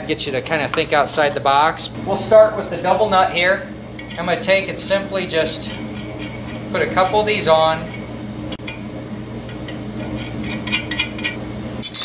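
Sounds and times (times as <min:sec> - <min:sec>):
steady low hum: 0:00.0 - 0:12.0
metal nuts clinking: 0:10.7 - 0:12.0.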